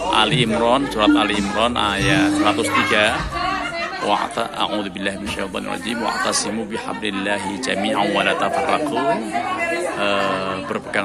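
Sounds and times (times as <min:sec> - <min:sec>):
man reciting: 0:00.0 - 0:09.2.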